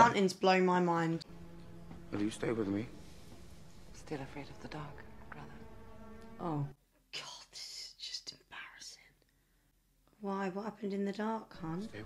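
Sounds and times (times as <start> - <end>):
person whispering: 7.2 - 9.2.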